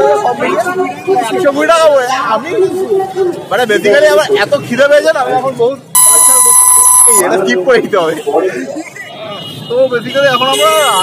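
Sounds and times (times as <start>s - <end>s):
censor bleep: 6.0s - 7.3s.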